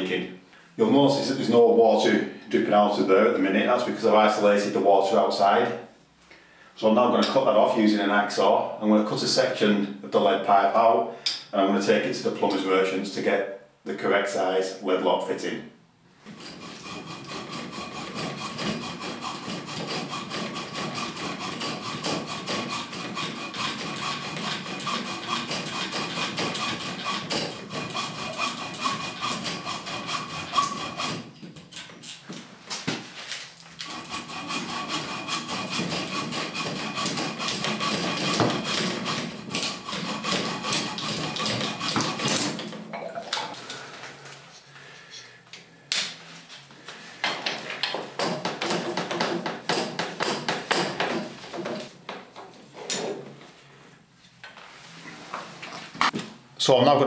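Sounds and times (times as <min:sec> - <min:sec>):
hacksaw cutting metal pipe: 0:16.3 - 0:32.2, 0:33.8 - 0:42.8, 0:48.1 - 0:51.9.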